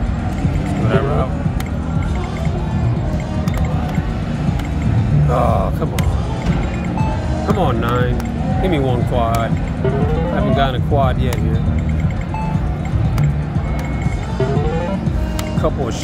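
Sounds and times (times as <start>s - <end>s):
background music: 0.0s - 16.0s
crowd noise: 0.0s - 16.0s
electronic tones gliding up and down: 9.8s - 10.9s, 12.2s - 15.1s.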